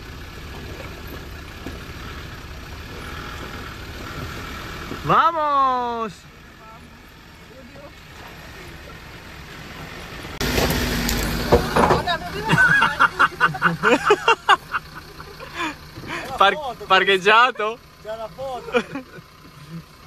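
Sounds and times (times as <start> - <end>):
off-road vehicle engine idling: 0.0 - 20.0
vehicle driving through rocky stream: 0.0 - 20.0
people talking and laughing: 11.6 - 16.7, 18.4 - 19.9.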